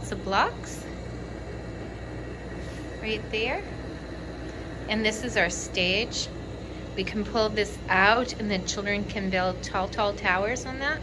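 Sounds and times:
air conditioning hum: 0.0s - 11.0s.

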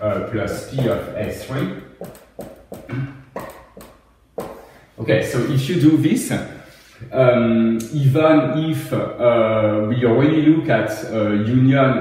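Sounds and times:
marker writing on whiteboard: 0.6s - 4.8s.

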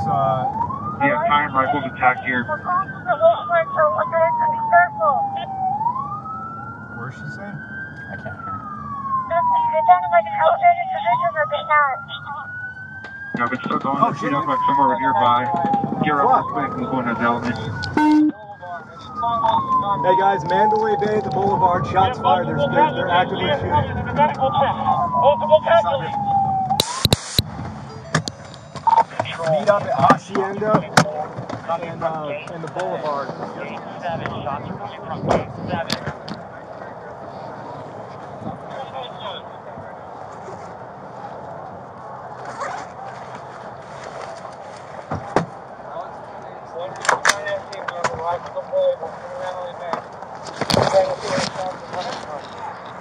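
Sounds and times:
indistinct voices: 0.0s - 5.6s, 9.3s - 12.5s, 13.4s - 26.5s, 28.8s - 40.6s, 45.8s - 53.0s
police siren wailing: 0.0s - 40.1s
radio static burst: 26.8s - 27.5s
camera knocking and scraping: 50.0s - 52.6s.

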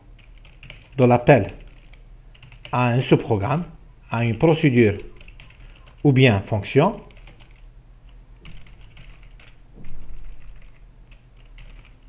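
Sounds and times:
low electrical hum: 0.0s - 12.0s
computer keyboard typing: 0.2s - 2.8s, 4.1s - 6.1s, 7.0s - 7.7s, 8.4s - 12.0s
loud knock: 9.7s - 10.4s.

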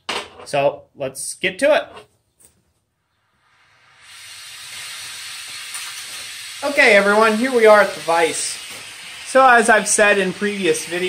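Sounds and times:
gas torch hissing: 3.2s - 11.0s.

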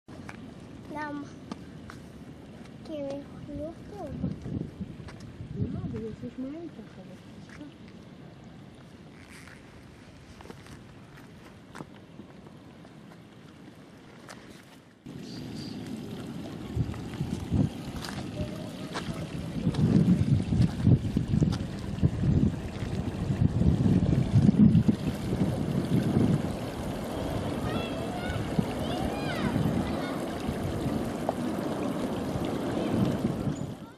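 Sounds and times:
low rumbling background noise: 14.8s - 33.9s.

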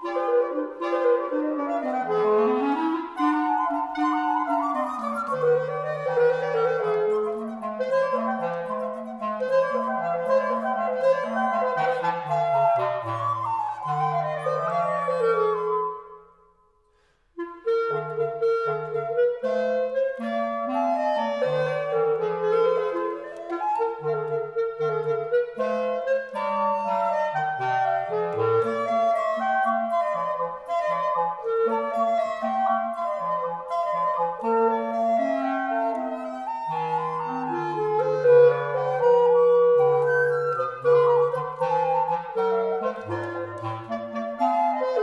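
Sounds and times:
woodwind trio playing: 0.0s - 45.0s.

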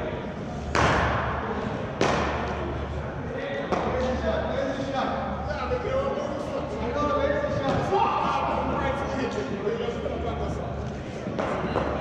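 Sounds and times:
men talking: 3.1s - 11.1s.

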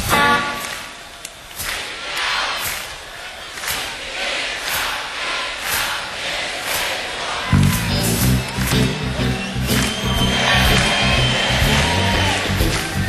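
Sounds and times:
crowd shouting and singing: 0.0s - 13.0s.

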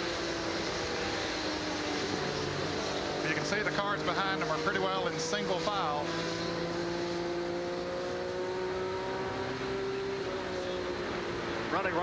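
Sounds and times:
racing car engine at speed: 0.0s - 12.0s.

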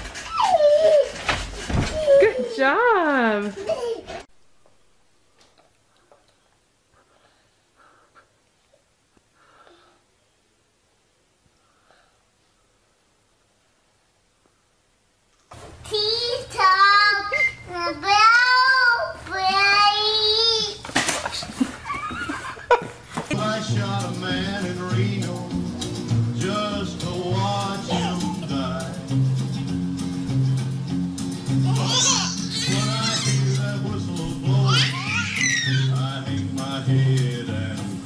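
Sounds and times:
babies laughing: 0.0s - 1.4s, 3.5s - 4.3s, 27.4s - 29.0s, 31.5s - 36.0s
toddler singing long notes: 16.0s - 20.8s, 27.7s - 28.6s, 34.5s - 36.0s.

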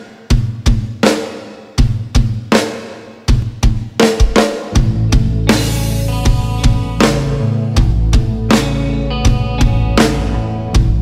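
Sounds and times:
drum kit hits: 0.0s - 11.0s
band playing pop music: 4.3s - 11.0s.

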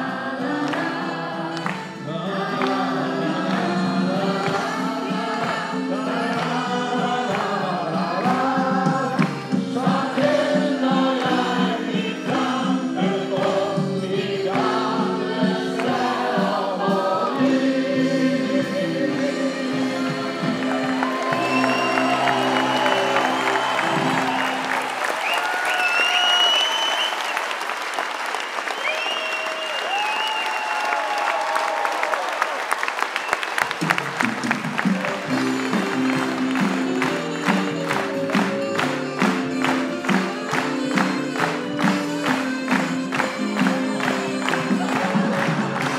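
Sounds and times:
group singing with band: 0.0s - 22.8s
audience applause: 19.8s - 45.9s.

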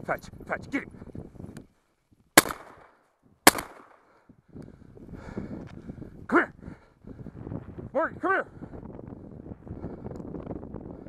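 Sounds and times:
shotgun shots with echo: 2.4s - 2.9s, 3.5s - 4.0s.

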